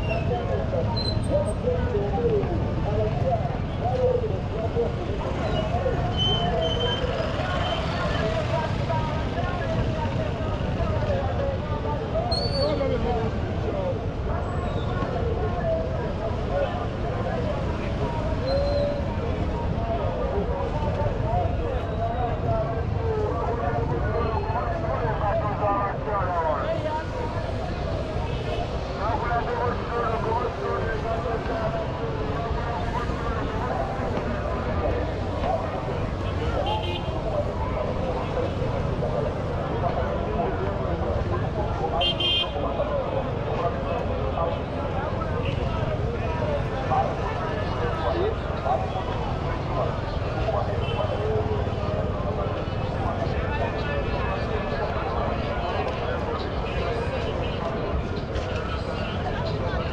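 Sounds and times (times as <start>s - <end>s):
many people talking: 0.0s - 59.9s
traffic rumble: 0.0s - 59.9s.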